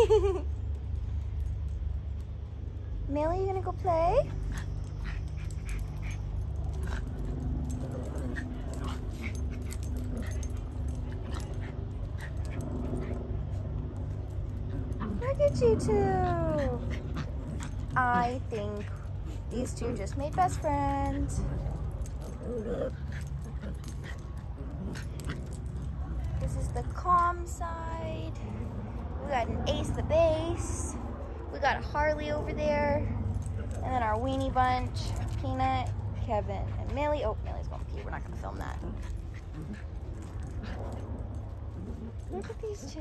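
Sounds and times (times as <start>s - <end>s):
low steady rumble: 0.0s - 43.0s
small dogs playing: 0.0s - 43.0s.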